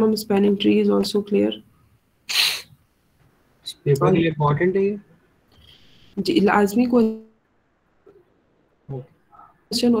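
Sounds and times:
person speaking: 0:03.6 - 0:05.1.

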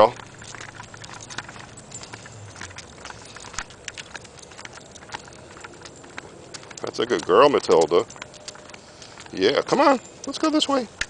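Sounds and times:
dog claws clicking on pavement: 0:00.0 - 0:11.0
person's footsteps on asphalt: 0:00.0 - 0:11.0.

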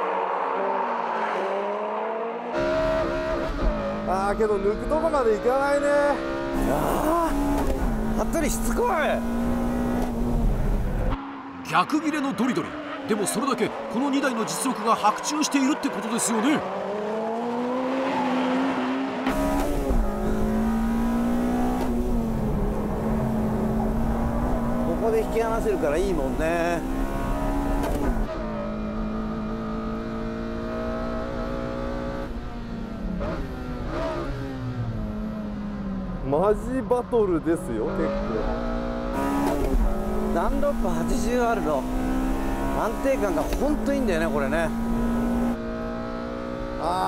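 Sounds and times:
car engine at high revs: 0:00.0 - 0:47.0.

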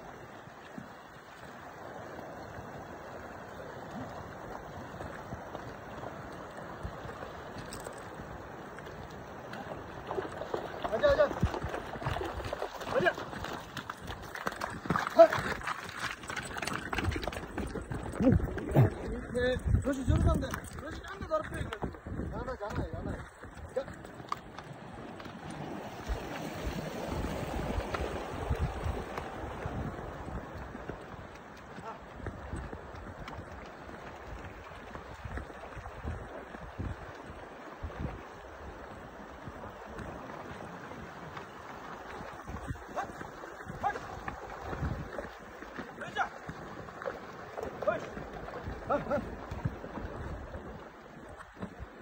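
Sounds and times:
stream running over rocks: 0:00.0 - 0:52.0
wind buffeting microphone: 0:16.5 - 0:24.0, 0:25.0 - 0:31.4, 0:32.2 - 0:41.4, 0:42.0 - 0:46.3.

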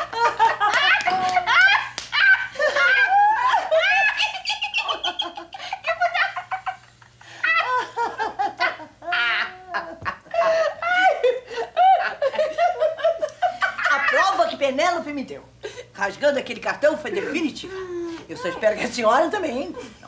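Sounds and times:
woman laughing heartily: 0:00.0 - 0:14.1.

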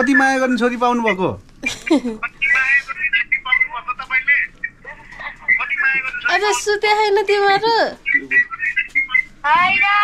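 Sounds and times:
voices talking: 0:00.0 - 0:10.0
voice through phone speaker: 0:02.2 - 0:06.7, 0:08.0 - 0:10.0.

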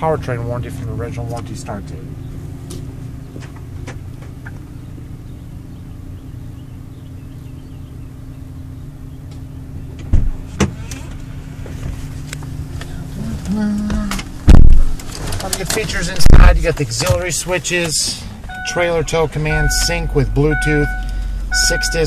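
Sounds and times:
diesel engine idling: 0:00.0 - 0:22.0
sharp thumps: 0:14.0 - 0:15.1.

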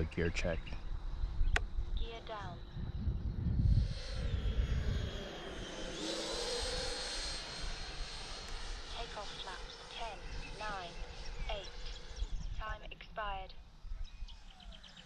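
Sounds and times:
model jet fan whine flying by: 0:00.0 - 0:12.6.

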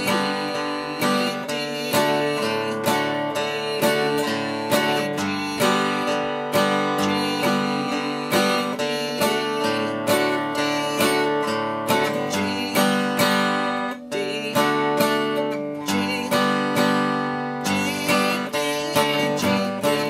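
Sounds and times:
acoustic guitar picking and strumming: 0:00.0 - 0:20.0.

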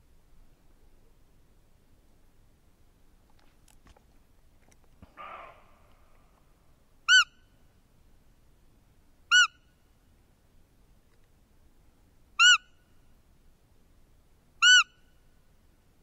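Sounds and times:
squeaky deer call whistles: 0:07.1 - 0:07.4, 0:09.3 - 0:09.6, 0:12.4 - 0:12.8, 0:14.6 - 0:15.1.

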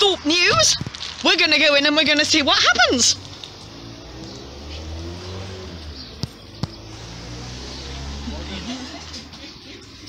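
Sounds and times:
car engine humming: 0:01.4 - 0:10.0.

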